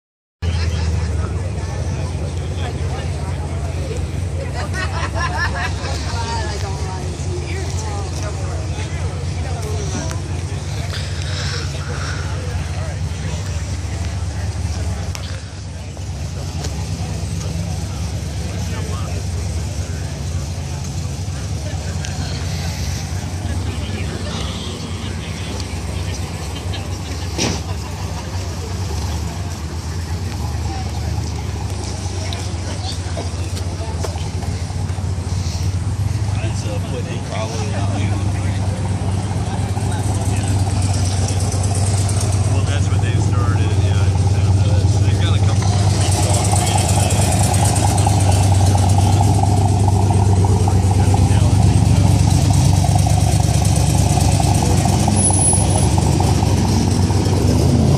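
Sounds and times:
car engine idling: 0:00.4 - 0:57.9.

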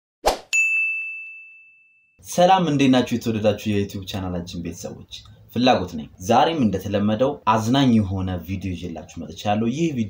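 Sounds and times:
bright high ding: 0:00.5 - 0:02.2.

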